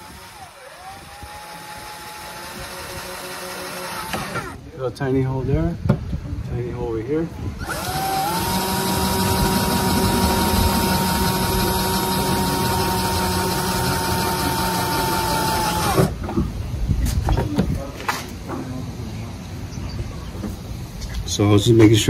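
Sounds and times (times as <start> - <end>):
cordless drill running: 0.0 - 4.6, 7.6 - 16.2.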